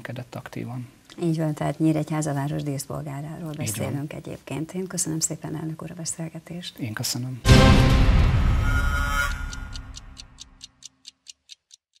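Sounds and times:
low notes of theme music: 0:07.4 - 0:10.5
clock ticking: 0:07.5 - 0:12.0.

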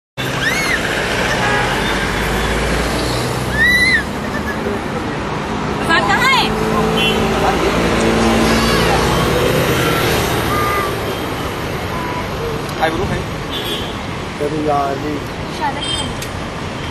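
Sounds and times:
rising and falling calls: 0:00.2 - 0:04.9
road traffic noise: 0:00.2 - 0:16.9
people's voices: 0:03.5 - 0:13.3.

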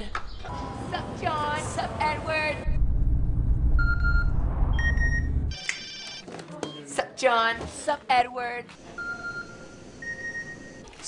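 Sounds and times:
loud low rumble: 0:00.5 - 0:05.5
electronic phone beeps: 0:03.8 - 0:06.8, 0:09.0 - 0:10.8.

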